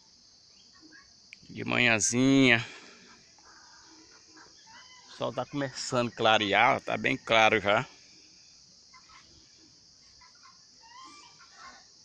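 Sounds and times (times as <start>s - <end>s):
faint bird calls: 0.0s - 12.0s
steady high hiss: 0.0s - 12.0s.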